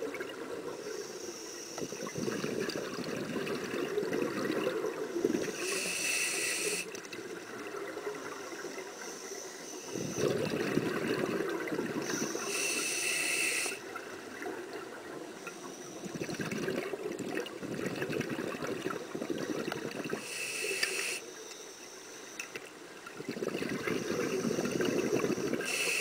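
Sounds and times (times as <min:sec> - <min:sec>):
high regulator hiss: 0:00.8 - 0:02.4, 0:05.1 - 0:07.0, 0:12.0 - 0:13.9, 0:20.1 - 0:22.5, 0:24.0 - 0:26.0
exhaust bubbles underwater: 0:01.9 - 0:05.6, 0:09.9 - 0:12.5, 0:16.0 - 0:20.2, 0:23.1 - 0:25.7.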